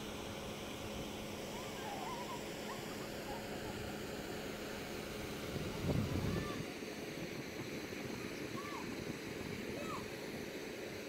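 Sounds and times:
outdoor hiss: 0:00.0 - 0:11.0
steady low hum: 0:00.0 - 0:11.0
low rumble on microphone: 0:05.4 - 0:10.1.

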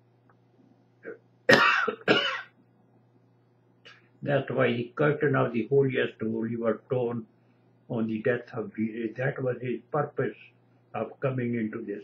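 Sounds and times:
man coughing: 0:01.1 - 0:02.5.

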